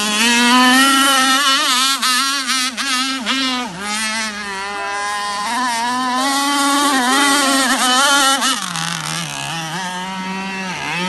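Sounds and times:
model powerboat engine wavering: 0.0 - 11.0.

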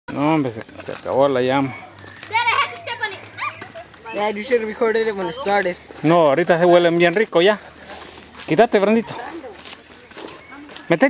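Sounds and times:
child calling: 1.7 - 5.6.

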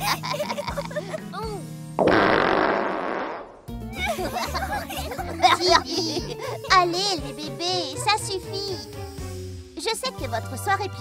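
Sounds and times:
baby giggle: 0.0 - 1.2, 4.0 - 6.7
light background music: 0.0 - 2.0, 3.7 - 11.0
cartoon fart: 2.0 - 3.7.

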